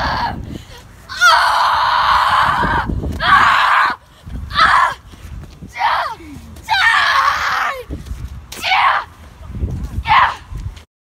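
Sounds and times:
boy screaming: 0.0s - 0.4s, 1.1s - 5.0s, 5.7s - 7.9s, 8.6s - 9.2s, 10.0s - 10.5s.

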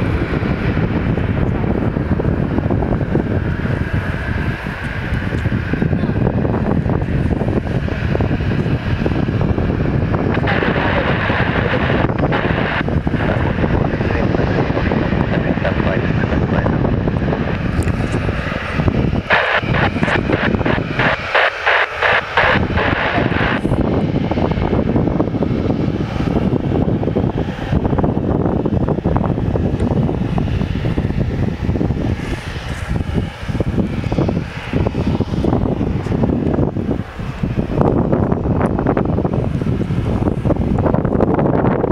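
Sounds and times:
jet engines at taxi power: 0.0s - 41.9s
wind buffeting microphone: 0.0s - 41.9s.

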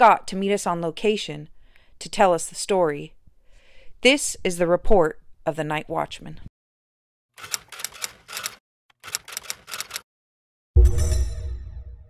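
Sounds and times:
typewriter key strikes: 7.4s - 10.0s.

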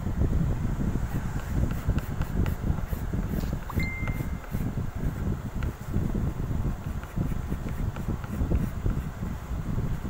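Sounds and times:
pencil sketching on paper: 1.1s - 9.3s
short steady high tone: 3.7s - 4.5s.

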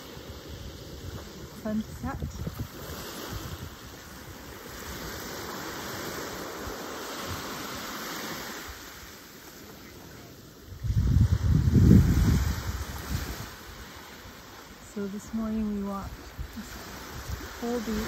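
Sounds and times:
wind buffeting microphone: 0.0s - 9.1s, 10.6s - 18.0s
small waves lapping on shore: 0.0s - 18.0s.

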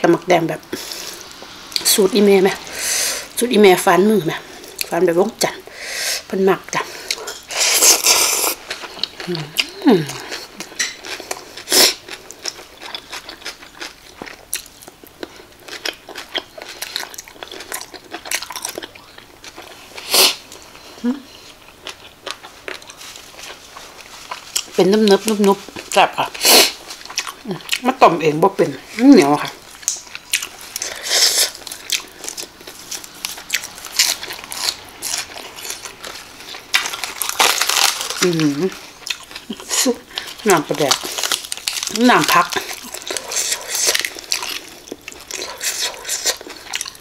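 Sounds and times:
person chewing wetly: 7.0s - 20.6s, 21.3s - 26.0s, 26.7s - 27.9s, 29.7s - 47.0s
lettuce leaves tearing: 29.8s - 47.0s.

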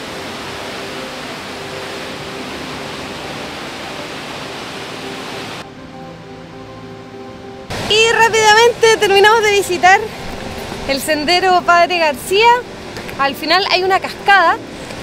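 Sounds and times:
waterfall rushing: 0.0s - 5.7s, 7.7s - 15.0s
soft background music: 0.0s - 15.0s.

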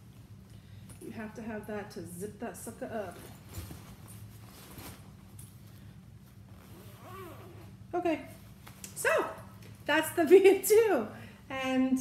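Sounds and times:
fabric bag rustling: 3.0s - 7.8s
zipper being worked: 6.4s - 7.9s.

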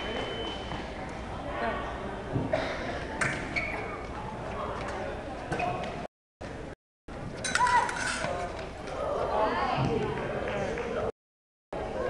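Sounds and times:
voices in a large hall: 0.0s - 11.1s, 11.8s - 12.0s.

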